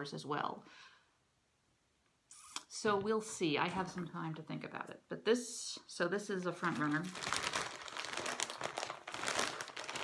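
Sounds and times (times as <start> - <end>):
fiber crinkling and rustling: 6.5 - 10.0.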